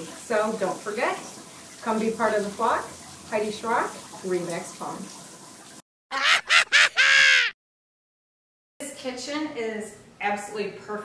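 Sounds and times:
cartoon bird honking: 0:06.1 - 0:07.6.

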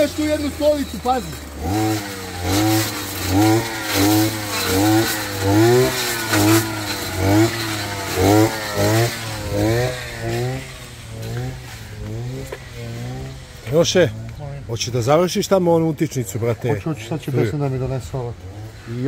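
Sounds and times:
brushcutter engine running steadily: 0:00.0 - 0:14.4
brushcutter engine revving: 0:00.0 - 0:19.0.

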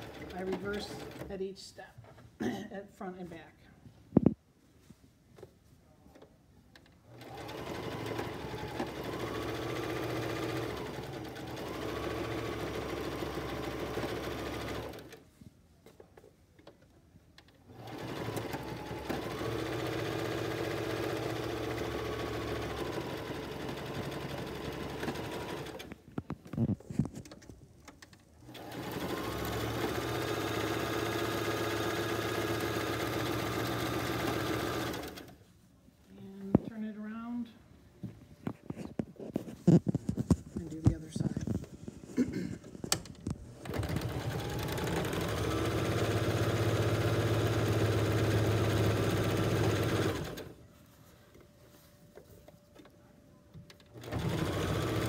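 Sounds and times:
sewing machine stitching: 0:00.0 - 0:01.5, 0:07.1 - 0:15.2, 0:17.7 - 0:35.4, 0:42.9 - 0:50.6, 0:53.7 - 0:55.0.

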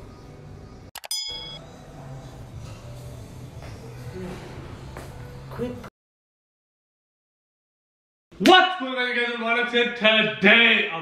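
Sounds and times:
bell-like ding: 0:01.0 - 0:01.6.

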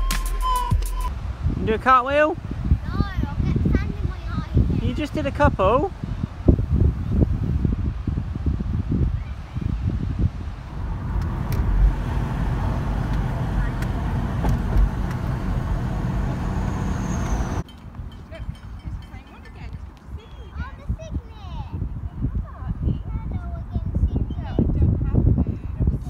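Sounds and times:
low buffeting: 0:01.1 - 0:22.2
car road and engine rumble: 0:10.0 - 0:17.7.

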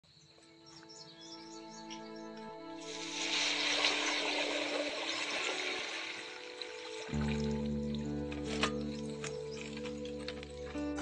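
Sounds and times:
music: 0:00.2 - 0:11.0
bike tyres splashing through water: 0:02.9 - 0:07.8.

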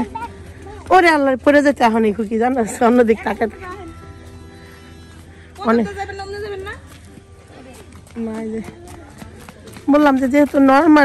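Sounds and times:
child's running footsteps: 0:00.0 - 0:11.0.

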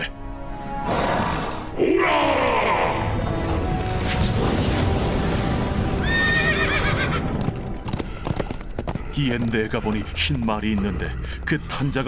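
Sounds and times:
horse neighing: 0:06.0 - 0:07.3
hoofbeats clopping: 0:06.5 - 0:11.1.

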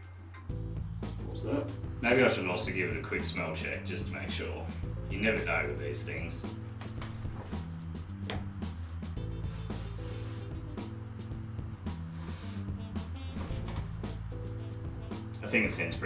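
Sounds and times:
music with bass and guitar: 0:00.0 - 0:16.0.

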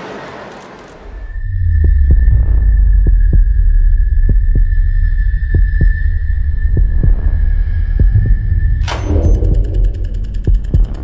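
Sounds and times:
deep low drone: 0:00.9 - 0:11.0
heartbeat-like double thump: 0:01.7 - 0:11.0.

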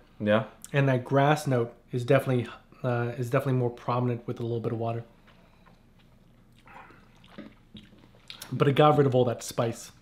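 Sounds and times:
wet sipping mouth sounds: 0:05.2 - 0:08.6.

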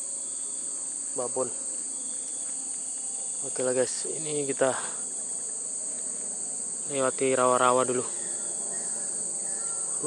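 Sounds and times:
insect chorus shrill drone: 0:00.0 - 0:10.0.

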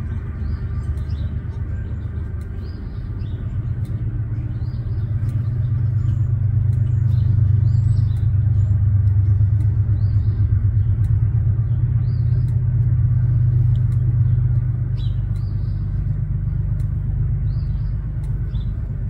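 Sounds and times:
small birds chirping: 0:00.0 - 0:19.0
steady low rumble: 0:00.0 - 0:19.0.

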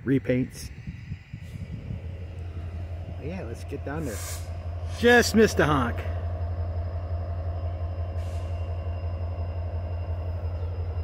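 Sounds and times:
freight train rumble: 0:00.0 - 0:11.0.

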